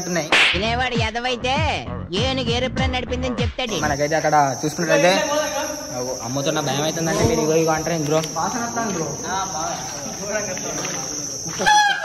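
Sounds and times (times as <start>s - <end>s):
crickets chirping: 0.0s - 0.3s, 2.1s - 12.0s
men talking: 3.7s - 12.0s.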